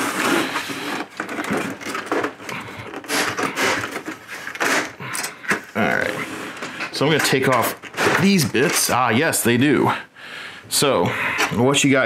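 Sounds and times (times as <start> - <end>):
plastic scraping and creaking: 0.0 - 9.1.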